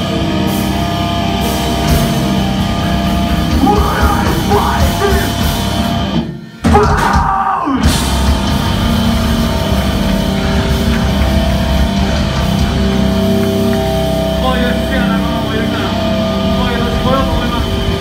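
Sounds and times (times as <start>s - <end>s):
heavy rock band playing: 0.0s - 18.0s.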